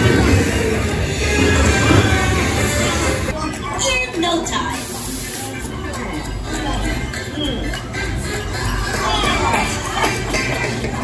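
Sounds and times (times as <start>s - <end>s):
music from speakers: 5.6s - 11.0s.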